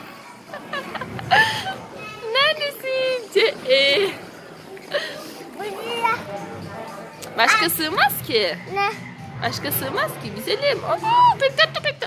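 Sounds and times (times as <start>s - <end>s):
hubbub of children playing: 0.0s - 12.0s
child's voice: 5.6s - 6.2s.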